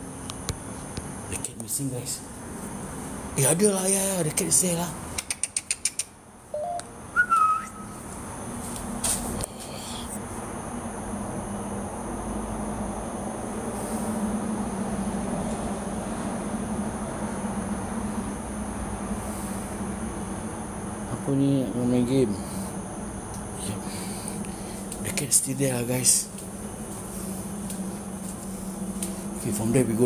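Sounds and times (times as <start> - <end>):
low hum with faint hiss: 0.0 - 30.0
quick clicks: 5.2 - 6.2
short whistle-like tones: 6.5 - 8.0.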